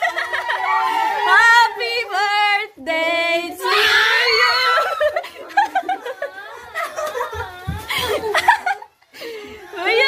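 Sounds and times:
overlapping laughter and chatter: 0.0 - 2.0, 4.4 - 10.0
long high scream: 3.6 - 5.0
people shrieking and squealing: 3.6 - 5.4.

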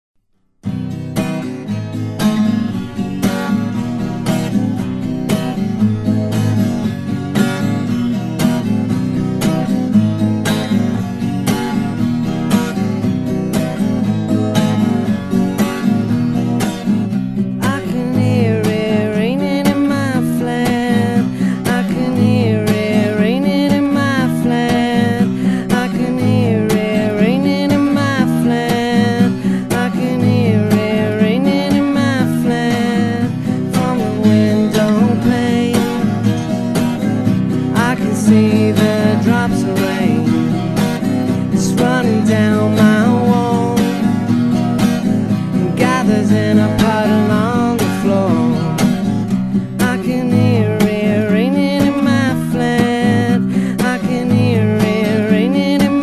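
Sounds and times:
acoustic guitar strumming: 0.6 - 56.0.

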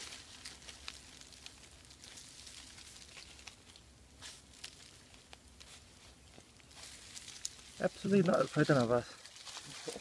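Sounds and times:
dry leaves rustling: 0.0 - 10.0.

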